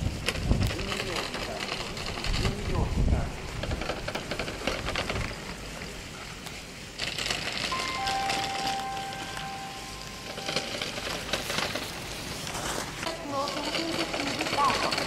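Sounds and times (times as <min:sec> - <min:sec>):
ski edges scraping icy snow: 0:03.4 - 0:15.0
faint steady tones: 0:05.4 - 0:15.0.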